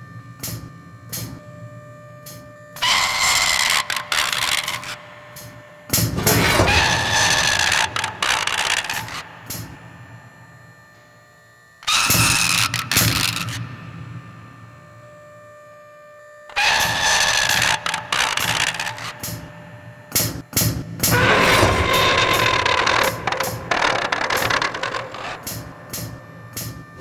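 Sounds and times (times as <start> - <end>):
faint hum: 0.0 - 27.0
electronic crackling and clicking: 21.4 - 26.9.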